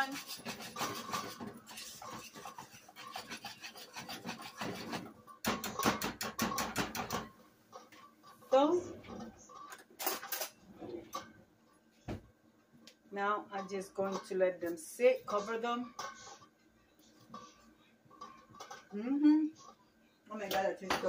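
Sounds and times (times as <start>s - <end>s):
whisk scraping metal pot: 0.0s - 7.2s, 15.2s - 16.5s, 17.2s - 18.9s.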